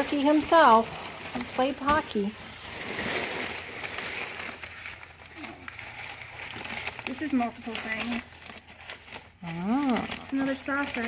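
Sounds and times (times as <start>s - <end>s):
packing paper rustling: 0.0s - 11.0s.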